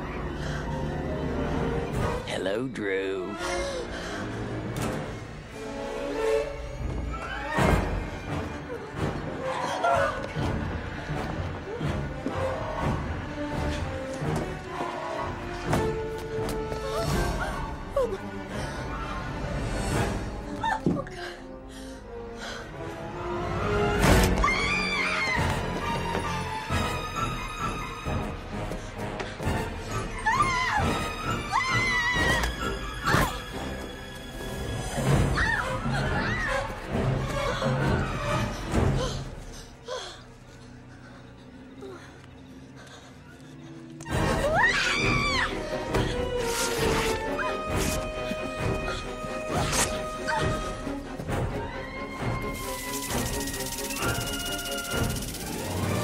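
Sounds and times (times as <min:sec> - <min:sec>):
horror film score: 0:00.0 - 0:56.0
woman screaming in terror: 0:30.2 - 0:33.3, 0:44.1 - 0:45.8.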